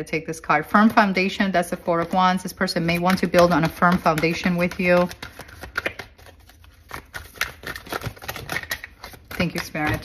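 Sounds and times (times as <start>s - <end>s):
cards being shuffled: 0.8s - 10.0s.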